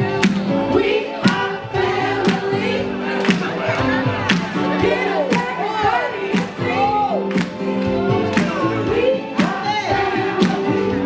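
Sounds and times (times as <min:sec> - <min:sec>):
young women singing into microphones: 0:00.0 - 0:03.2, 0:04.7 - 0:07.2, 0:08.5 - 0:11.0
loud recorded music: 0:00.0 - 0:11.0.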